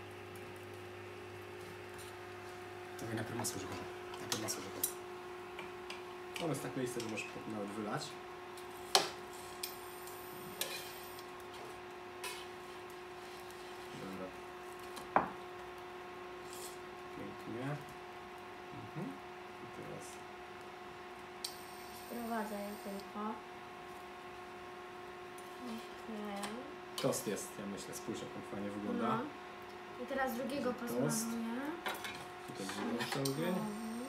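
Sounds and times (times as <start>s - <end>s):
steady low hum: 15.3s - 34.0s.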